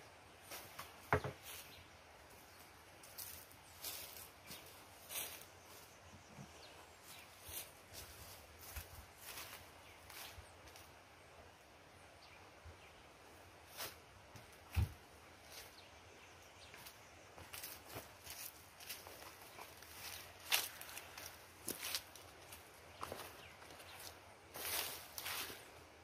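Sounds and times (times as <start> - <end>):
rustles and knocks: 0.5 - 1.6
footsteps on dirt and leaves: 2.4 - 11.0, 16.6 - 25.8.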